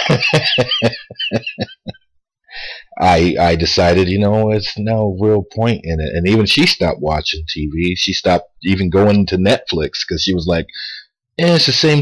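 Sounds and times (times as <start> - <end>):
man laughing: 0.0 - 2.0
short breath: 2.5 - 2.9.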